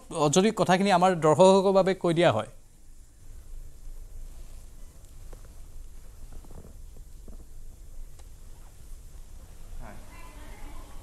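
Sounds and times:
low steady rumble: 1.2s - 11.0s.

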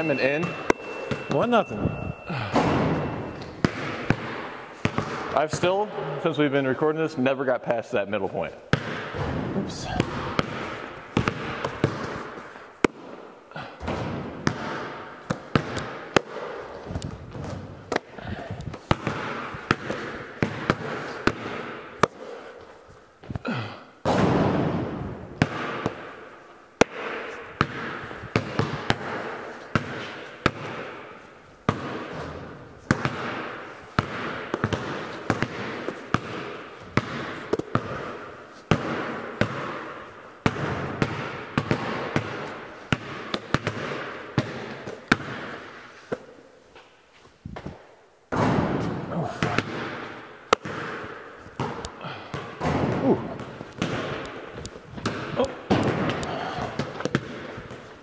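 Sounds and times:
basketballs bouncing on concrete: 0.0s - 6.1s, 8.7s - 22.5s, 23.2s - 26.2s, 26.8s - 46.3s, 47.5s - 58.0s
balls striking rim and backboard: 0.0s - 6.2s, 8.7s - 22.5s, 23.3s - 46.3s, 48.3s - 58.0s.

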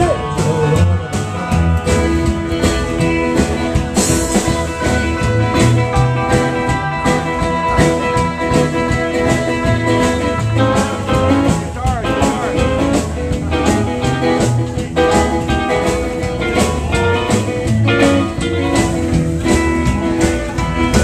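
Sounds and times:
rockabilly band playing: 0.0s - 21.0s.

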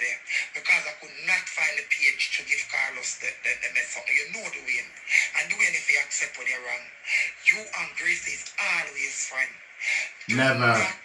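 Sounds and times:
person talking through phone speaker: 10.3s - 11.0s.

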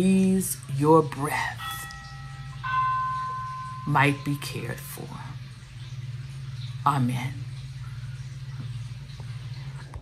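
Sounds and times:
low steady hum: 0.0s - 10.0s
bell chimes: 1.4s - 5.3s.

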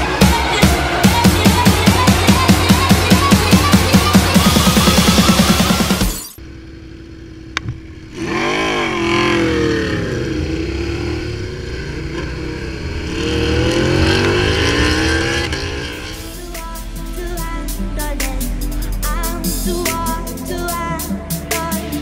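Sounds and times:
electronic music with a beat: 0.0s - 6.4s, 15.6s - 22.0s
motorcycle engine revving: 0.0s - 22.0s.

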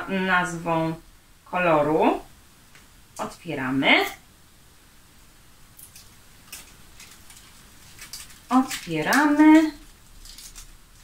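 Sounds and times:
packaging rustling and scraping: 5.8s - 11.0s.

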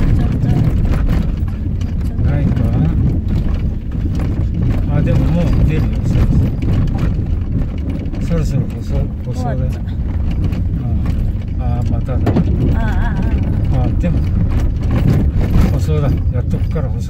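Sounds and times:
people talking: 0.0s - 1.2s, 2.1s - 3.1s, 4.9s - 6.6s, 8.2s - 10.0s, 10.8s - 14.3s, 15.6s - 17.0s
car rumbling on gravel: 0.0s - 17.0s.

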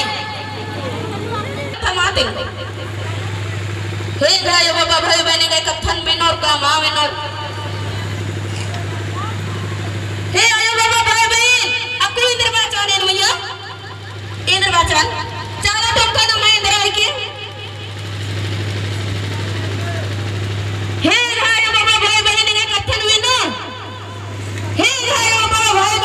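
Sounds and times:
faint crowd voices: 0.0s - 26.0s.

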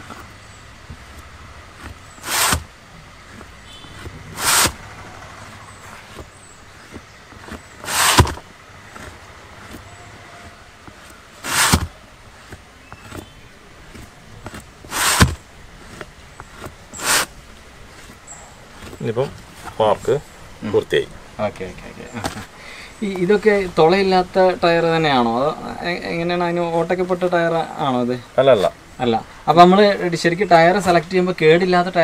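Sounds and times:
chalk scraping on rubber tyre: 0.9s - 20.2s.

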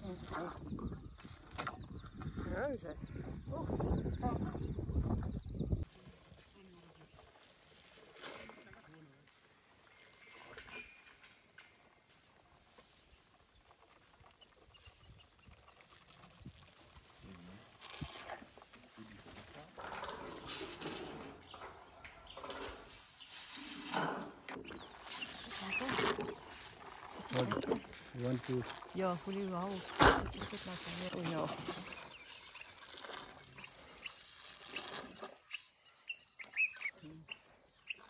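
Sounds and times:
elephant calf sucking and slurping: 0.0s - 2.6s, 5.8s - 21.6s, 22.4s - 35.6s.

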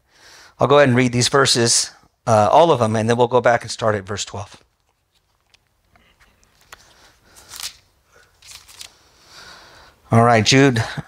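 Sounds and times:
pages turning: 4.6s - 9.2s.

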